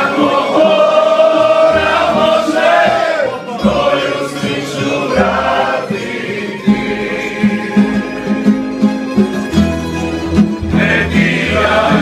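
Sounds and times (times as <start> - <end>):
group singing in chorus: 0.0 - 8.4, 10.6 - 12.0
plucked string strums: 0.0 - 12.0.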